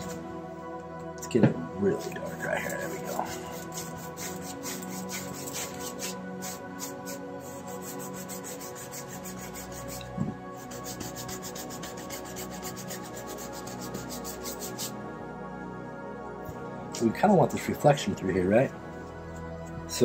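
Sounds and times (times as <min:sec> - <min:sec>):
soft background music: 0:00.0 - 0:20.0
paintbrush scrubbing on canvas: 0:02.0 - 0:15.0.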